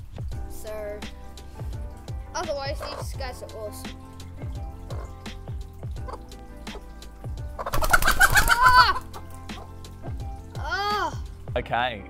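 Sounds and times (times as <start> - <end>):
faint background music: 0.0 - 12.0
chicken call: 7.6 - 9.1.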